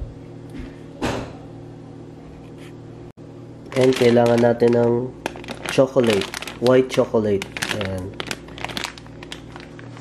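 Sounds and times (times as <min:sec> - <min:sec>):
plastic bag crinkling: 0:03.7 - 0:10.0.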